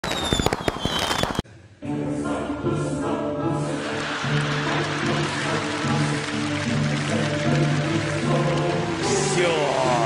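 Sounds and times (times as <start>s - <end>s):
faint falling whistle: 0.0s - 1.4s
fireworks crackling and popping: 0.0s - 1.4s
music: 1.4s - 10.0s.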